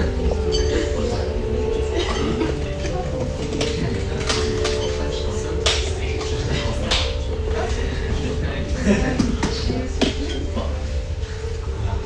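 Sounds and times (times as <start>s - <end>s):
background music: 0.0s - 12.0s
murmur of diners' voices: 0.0s - 12.0s.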